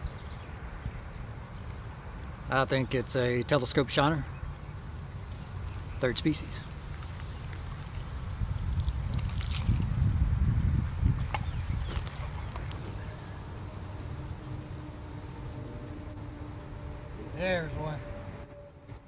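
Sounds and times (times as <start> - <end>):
low rumbling on microphone: 4.2 - 19.0.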